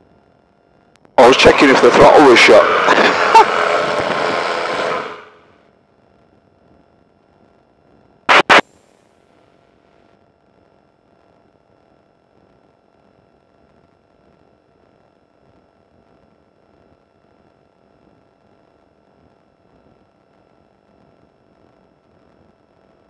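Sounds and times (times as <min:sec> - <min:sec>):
intercom noise: 0:01.2 - 0:05.3, 0:08.3 - 0:08.6.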